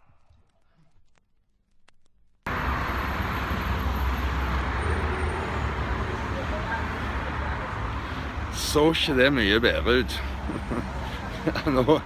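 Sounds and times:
city street traffic rumble: 2.5 - 12.0.

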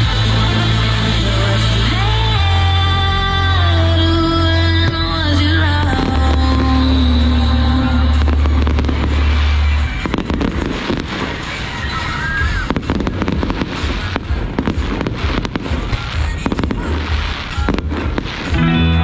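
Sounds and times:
fireworks crackling and banging: 0.0 - 19.0
loud music with heavy bass: 0.0 - 19.0.

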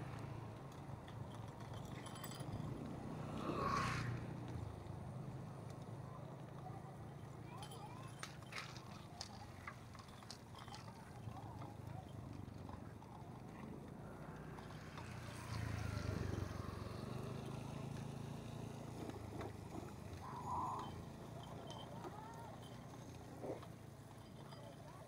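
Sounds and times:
bicycle rattling over gravel: 0.1 - 25.0.

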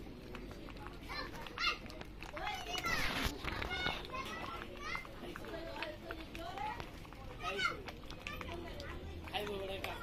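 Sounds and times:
children chattering: 0.0 - 10.0
child shouting: 7.4 - 7.8.

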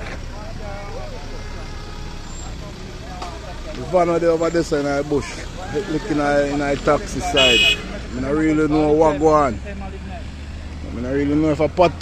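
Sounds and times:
truck engine rumble: 0.0 - 12.0
tyre noise on road: 0.0 - 12.0.

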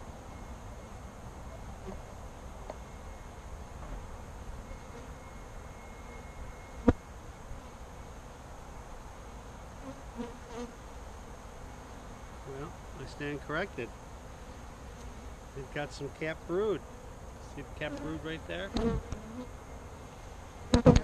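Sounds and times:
bees buzzing: 9.3 - 21.0.

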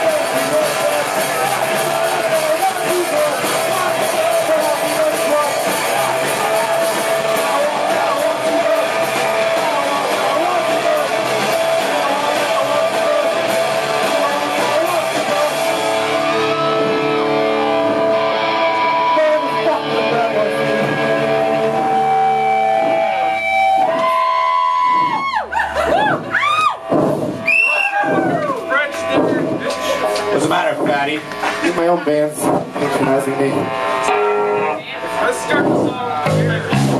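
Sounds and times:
drums: 0.0 - 36.9
electric guitars: 0.0 - 36.9.

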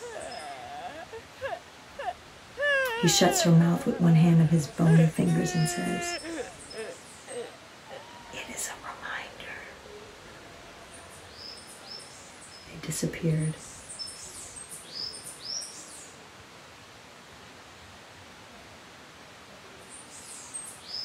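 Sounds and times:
bird chirping: 0.0 - 1.2, 2.6 - 10.2
faint background hiss: 0.0 - 21.0.

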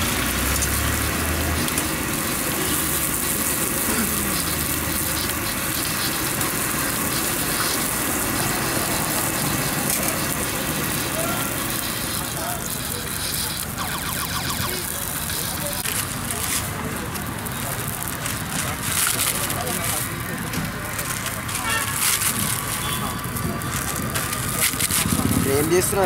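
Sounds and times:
gas burner hissing: 0.0 - 26.0.

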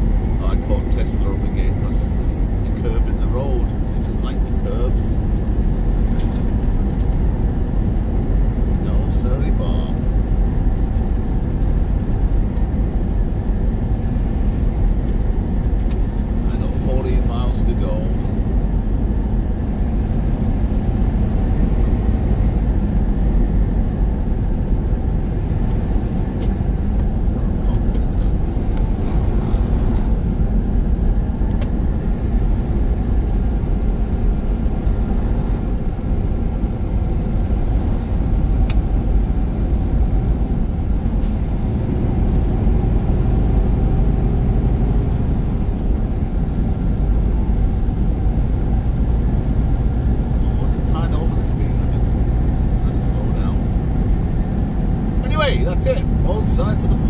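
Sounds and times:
road rumble: 0.0 - 57.0
truck engine drone: 0.0 - 57.0.

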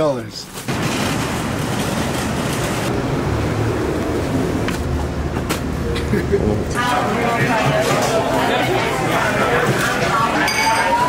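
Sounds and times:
cart wheels rolling on tiles: 0.5 - 2.9.

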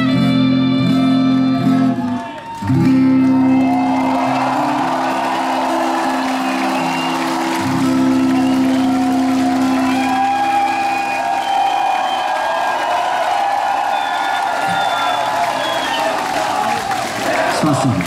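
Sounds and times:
crowd cheering and applauding: 1.3 - 18.0.

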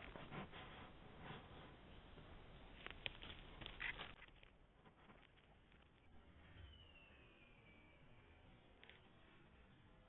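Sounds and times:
faint thin whistle gliding downward: 6.1 - 9.3.

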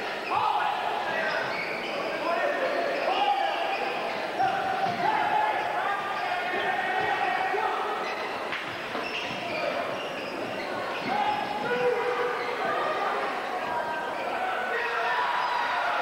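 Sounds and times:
players and spectators shouting: 0.0 - 16.0.

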